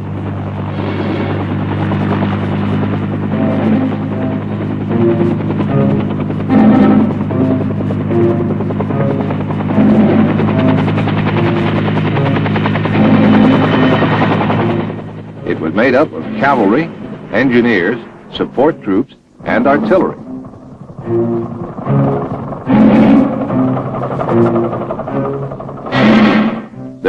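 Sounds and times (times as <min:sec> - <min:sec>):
helicopter rotor chop: 0:00.0 - 0:27.0.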